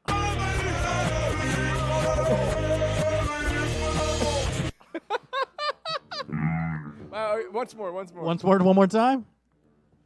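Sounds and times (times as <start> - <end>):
men laughing squeakily: 4.8 - 6.9.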